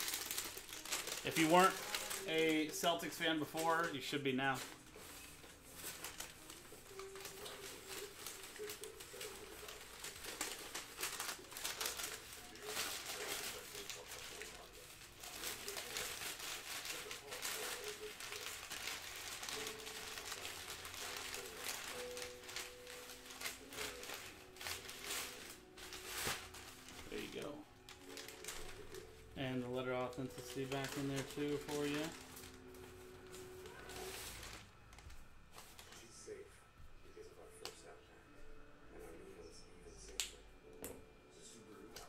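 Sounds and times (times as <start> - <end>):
paper and plastic bag rustling: 0.0 - 36.4.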